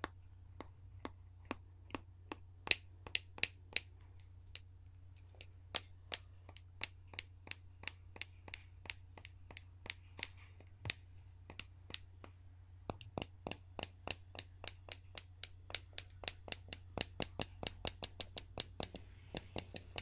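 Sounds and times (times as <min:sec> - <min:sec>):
clicks and taps from small tube: 0:00.0 - 0:20.0.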